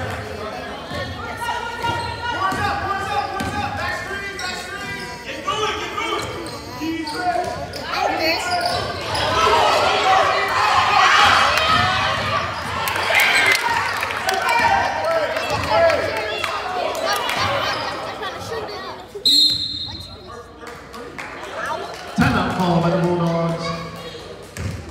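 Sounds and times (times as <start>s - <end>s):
voices echoing in a gym: 0.0s - 24.9s
shoe squeaks: 4.2s - 9.5s, 19.0s - 20.4s
people shouting: 9.1s - 17.5s.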